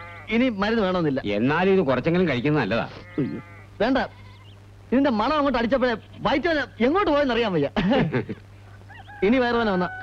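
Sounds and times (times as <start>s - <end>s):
goat bleating: 0.0s - 0.4s, 2.8s - 4.6s.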